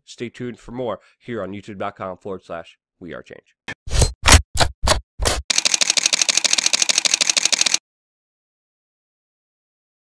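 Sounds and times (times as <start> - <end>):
camera shutter clicks: 5.5 - 7.8.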